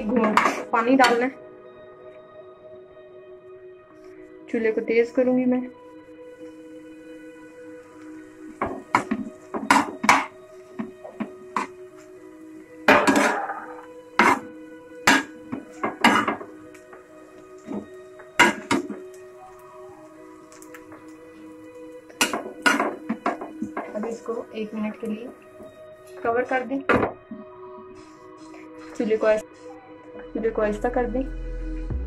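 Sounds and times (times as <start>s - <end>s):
background music: 0.0s - 32.0s.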